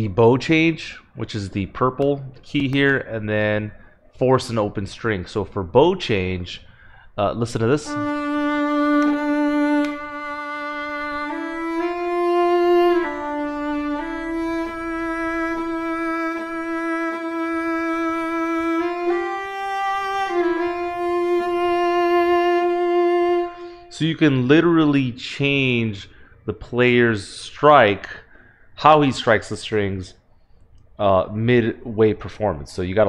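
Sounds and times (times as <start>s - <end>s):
solo viola long bowed notes: 7.7s - 24.0s.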